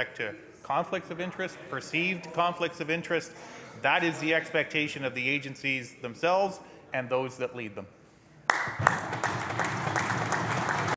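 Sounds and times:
group applause: 0:08.5 - 0:10.9.

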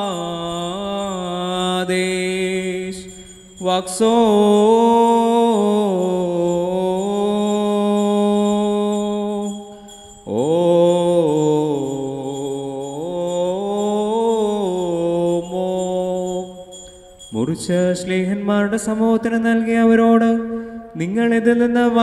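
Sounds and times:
man chanting: 0:00.0 - 0:16.8, 0:17.4 - 0:22.0.

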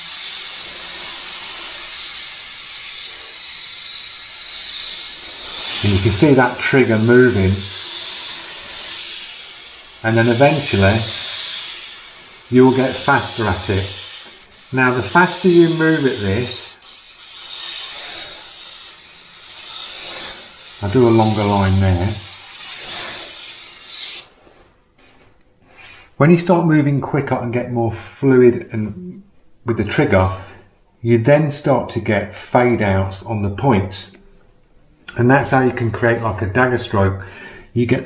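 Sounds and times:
airbrush hissing: 0:00.0 - 0:24.6.

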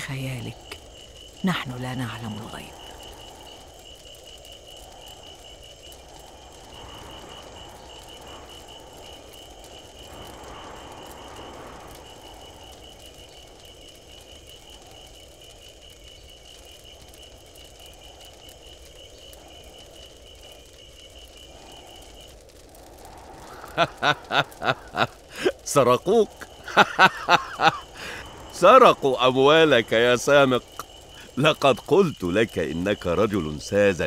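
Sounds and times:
cricket chirping: 0:00.0 - 0:34.0.

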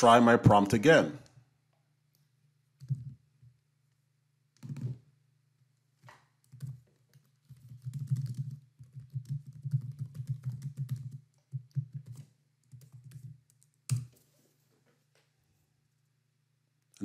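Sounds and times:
typing on a computer keyboard: 0:02.8 - 0:03.2, 0:06.4 - 0:14.2.

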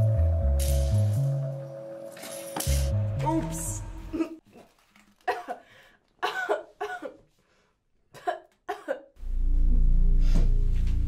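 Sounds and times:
woman coughing and gagging: 0:04.1 - 0:04.4, 0:05.2 - 0:07.2, 0:08.1 - 0:09.2
low droning music note: 0:09.2 - 0:11.0.

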